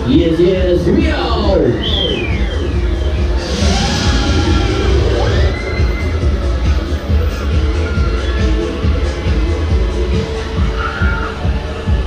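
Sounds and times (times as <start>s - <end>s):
electronic music with heavy bass: 0.0s - 12.0s
rush of noise: 1.3s - 12.0s.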